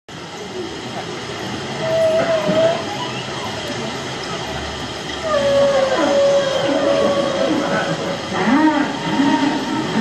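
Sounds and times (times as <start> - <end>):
murmur of voices: 0.1 - 10.0
steady hiss: 0.1 - 10.0.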